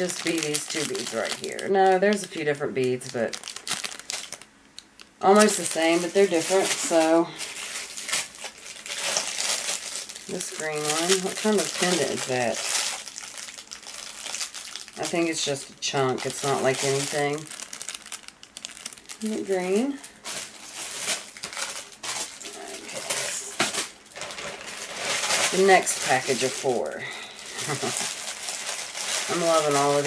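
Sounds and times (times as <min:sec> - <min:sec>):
plastic packaging crinkling: 0:00.0 - 0:30.0
person murmuring: 0:26.8 - 0:28.1.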